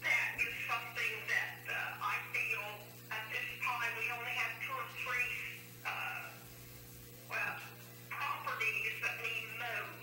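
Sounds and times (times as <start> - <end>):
low electrical hum: 0.0 - 10.0
indistinct speech: 7.3 - 10.0.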